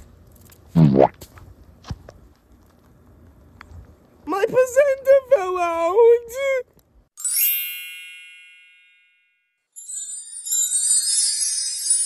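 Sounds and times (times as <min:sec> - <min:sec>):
bell-like chime: 0:07.2 - 0:12.0
jingling: 0:09.8 - 0:12.0.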